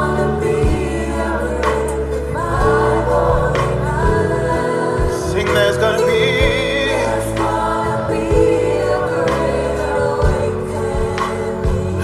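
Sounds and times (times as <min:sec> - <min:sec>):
band with bass: 0:00.0 - 0:12.0
choir holding long notes: 0:00.0 - 0:12.0.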